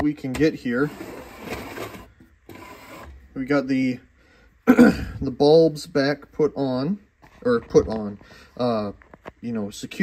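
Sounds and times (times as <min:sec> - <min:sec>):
plastic rasping and rubbing: 0:00.3 - 0:03.3.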